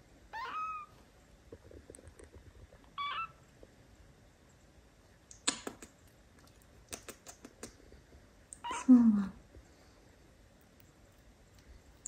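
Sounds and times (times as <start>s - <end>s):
soft clicking and rustling: 1.5s - 3.8s.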